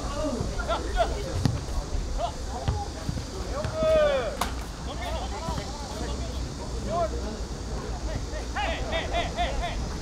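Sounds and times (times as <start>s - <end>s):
ball kicked thuds: 1.4s - 1.6s
football players shouting: 8.5s - 10.0s.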